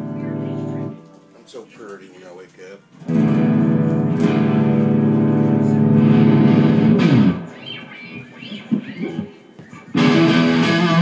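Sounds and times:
loud guitar playing: 0.0 - 1.1, 3.0 - 9.3, 9.9 - 11.0
electric guitar chord sliding down: 10.0 - 11.0.

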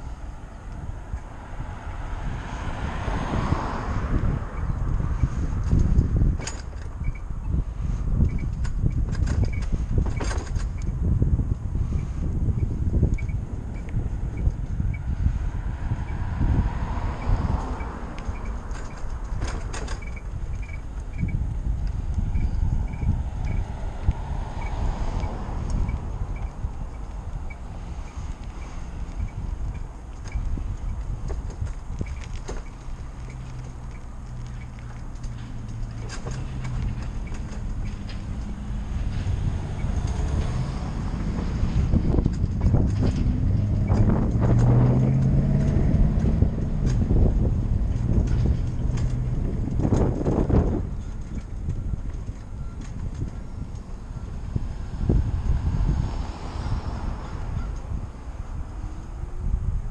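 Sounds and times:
road rumble from electric bike: 0.0 - 59.9
wind rushing over microphone: 0.0 - 59.9.

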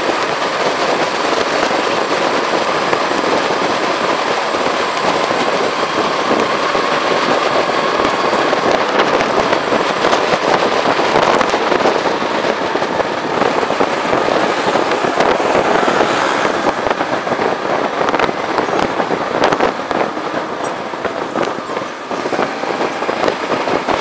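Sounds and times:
wind and road noise: 0.0 - 24.0
pops and crackles: 0.1 - 24.0.

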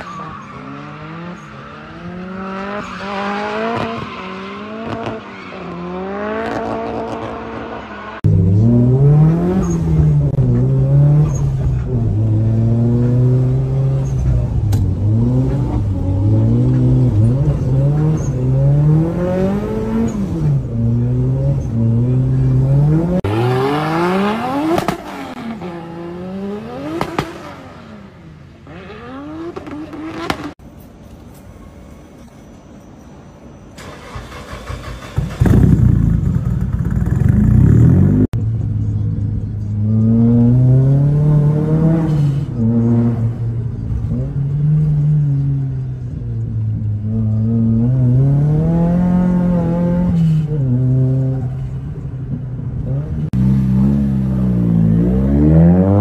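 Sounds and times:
car engine revving: 0.6 - 30.6, 52.8 - 56.0.

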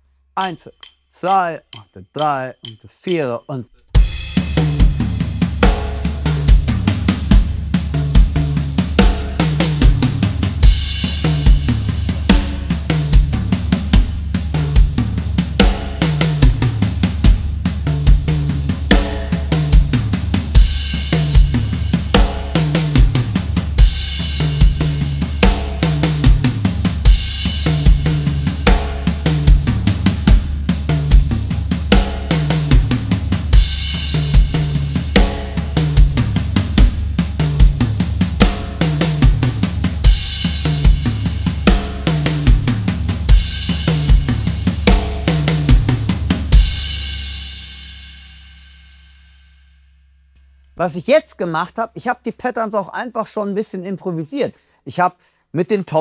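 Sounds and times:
bass drum beat: 4.0 - 47.1.

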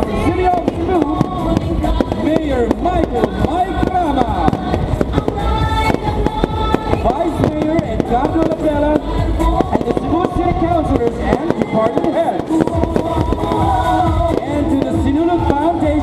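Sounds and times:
fireworks bangs and crackles: 0.0 - 16.0
loud music: 0.0 - 16.0
voices: 0.0 - 16.0.

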